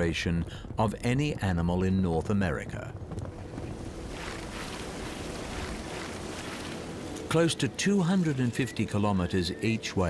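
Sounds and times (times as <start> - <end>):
shallow river water rushing: 3.4 - 10.0.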